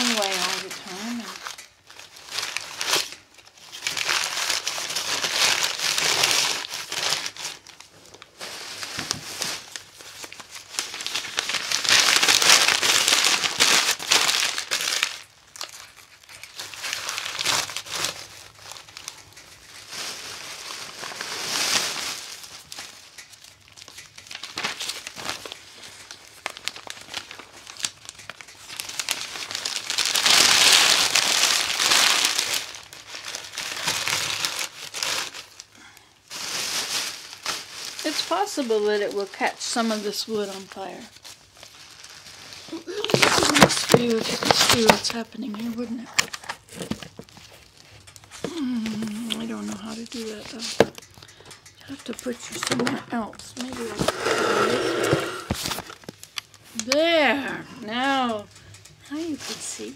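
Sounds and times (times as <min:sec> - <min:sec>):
paper crinkling and rustling: 0:00.0 - 0:51.3, 0:51.9 - 0:59.9.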